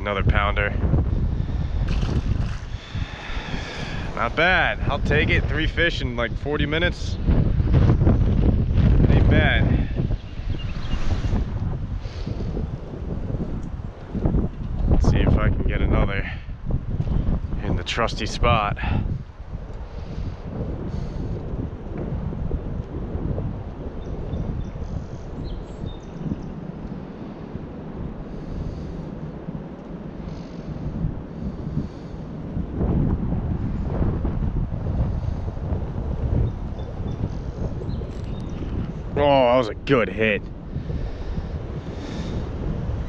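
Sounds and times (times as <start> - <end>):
wind buffeting microphone: 0.0 - 43.0.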